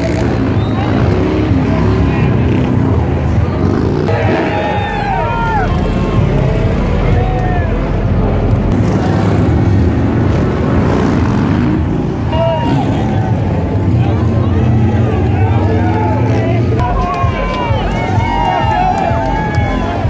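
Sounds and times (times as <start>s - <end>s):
crowd hubbub and voices: 0.0s - 20.0s
motorcycle engines revving: 0.0s - 20.0s.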